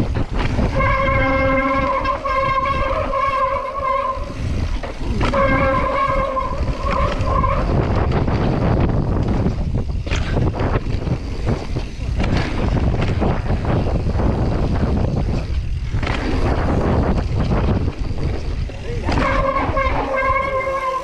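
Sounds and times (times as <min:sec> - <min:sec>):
bicycle freehub buzzing whine: 0:00.0 - 0:21.0
bike rattling over rough trail: 0:00.0 - 0:21.0
tyre rumble: 0:00.0 - 0:21.0
wind on microphone: 0:00.0 - 0:21.0.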